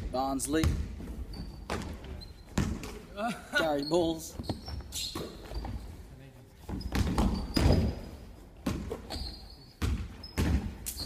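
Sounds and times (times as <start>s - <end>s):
basketball bouncing on wooden court: 0.0s - 3.1s, 4.3s - 5.9s, 6.7s - 11.0s.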